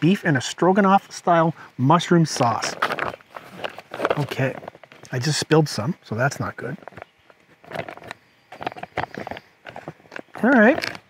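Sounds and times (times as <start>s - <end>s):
food pouch crinkling: 2.6s - 5.1s.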